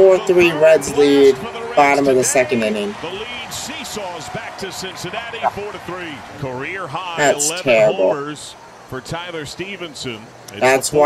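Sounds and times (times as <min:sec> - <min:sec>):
announcer calling a play: 0:00.0 - 0:11.0
ballpark crowd noise: 0:00.0 - 0:11.0.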